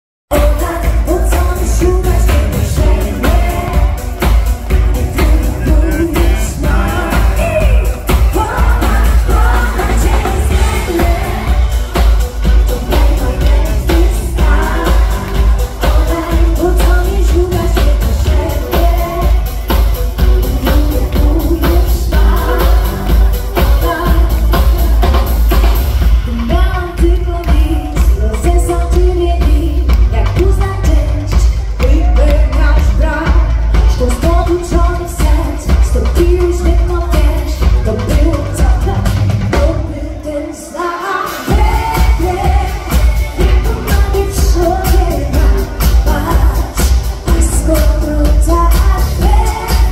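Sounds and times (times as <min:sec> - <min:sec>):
woman singing into microphone: 0:00.3 - 0:25.2, 0:26.2 - 0:49.9
bass-heavy dance backing track: 0:00.3 - 0:40.3, 0:41.3 - 0:49.9.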